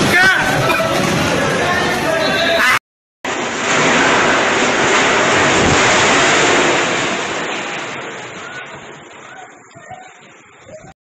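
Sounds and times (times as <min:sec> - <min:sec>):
wind rushing loudly: 0:03.3 - 0:08.7.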